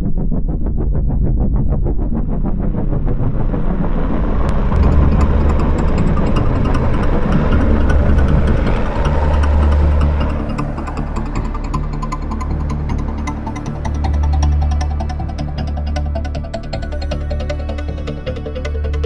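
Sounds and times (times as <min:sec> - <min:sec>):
deep steady hum: 0:00.0 - 0:19.0
loud motor-like roar: 0:04.2 - 0:14.6
fast pulsing beat: 0:04.5 - 0:19.0.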